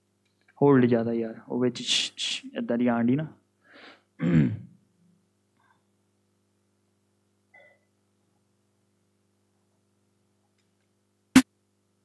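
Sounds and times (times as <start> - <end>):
man clearing his throat: 4.2 - 4.8.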